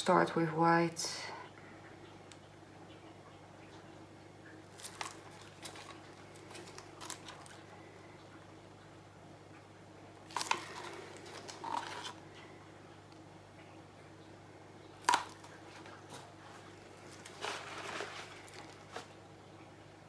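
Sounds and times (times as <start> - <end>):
steady low hum: 0.0 - 20.0
small objects clicking and tapping: 10.3 - 12.2, 15.0 - 15.6.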